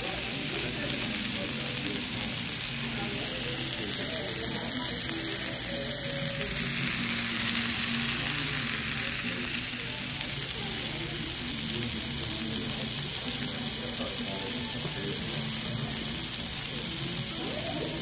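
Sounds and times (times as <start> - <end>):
food sizzling on a skillet: 0.0 - 18.0.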